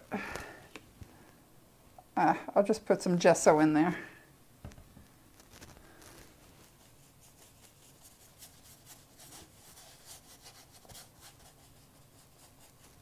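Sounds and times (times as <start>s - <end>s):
paintbrush rubbing on paper: 6.4s - 13.0s.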